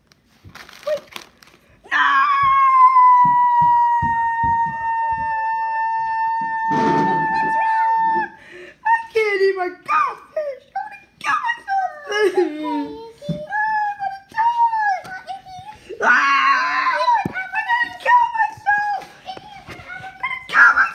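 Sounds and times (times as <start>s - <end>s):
high-pitched cries and squeals: 0.6s - 8.4s
person wailing: 1.9s - 8.4s, 11.2s - 15.2s, 15.9s - 19.0s.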